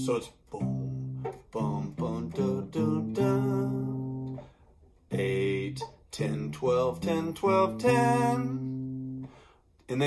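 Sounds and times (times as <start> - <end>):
acoustic bass guitar plucked: 0.0 - 9.4.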